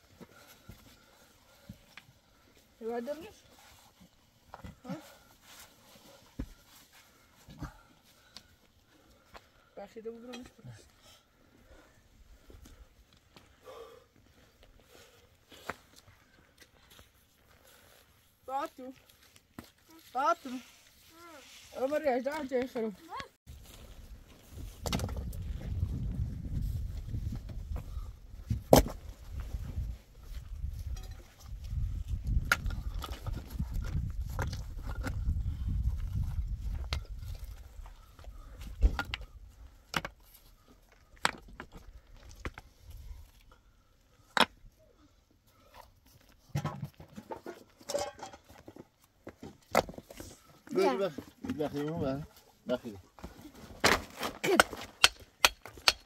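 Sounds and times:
wind rumble on microphone: 24.0s - 38.9s.

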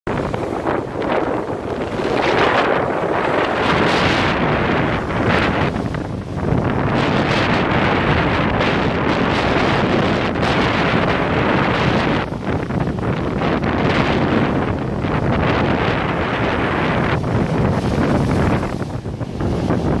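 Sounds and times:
sea surf crashing over rocks: 0.1s - 20.0s
wind buffeting microphone: 0.1s - 20.0s.

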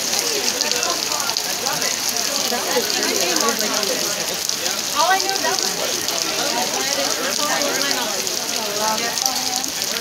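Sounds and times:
heavy rain hissing: 0.0s - 10.0s
people talking: 0.0s - 10.0s.

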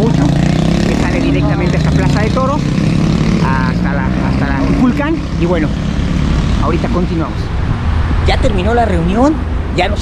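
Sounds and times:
people talking: 0.0s - 2.6s, 3.4s - 5.8s, 6.6s - 7.5s, 8.3s - 10.0s
low engine drone: 0.0s - 7.8s.

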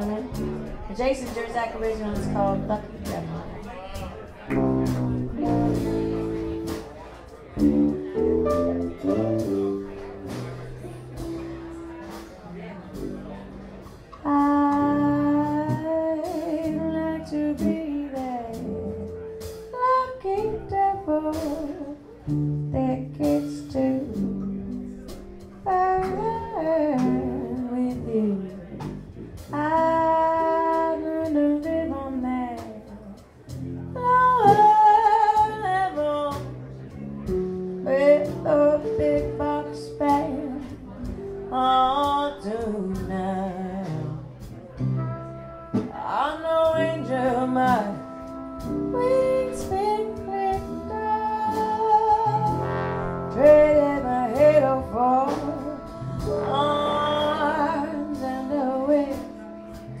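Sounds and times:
woman singing: 0.0s - 3.5s, 14.2s - 22.1s, 22.7s - 24.6s, 25.7s - 28.8s, 29.5s - 33.2s, 34.0s - 36.5s, 37.8s - 44.2s, 45.8s - 60.0s
drums: 0.0s - 60.0s
guitar: 0.0s - 60.0s
horns holding long notes: 47.8s - 60.0s.

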